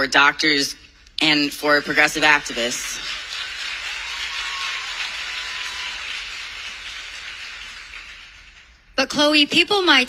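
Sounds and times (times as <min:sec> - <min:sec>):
audience applauding: 0:01.9 - 0:08.9.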